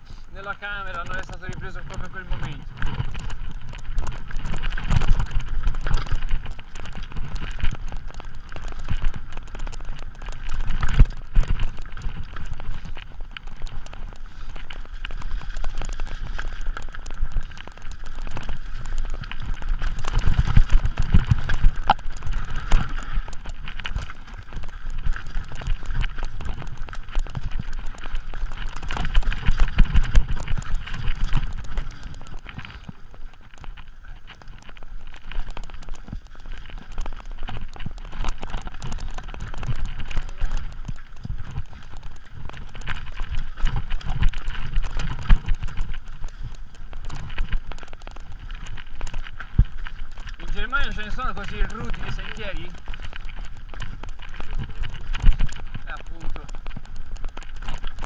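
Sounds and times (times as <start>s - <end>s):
wind rumble on microphone: 0.0s - 58.0s
bike tyres clattering over stones: 0.1s - 58.0s
bike rattling over bumps: 0.3s - 58.0s.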